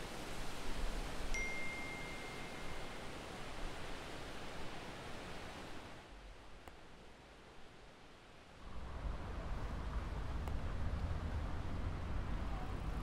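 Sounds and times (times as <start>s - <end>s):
steady background hiss: 0.0s - 13.0s
phone notification chime: 1.4s - 2.8s.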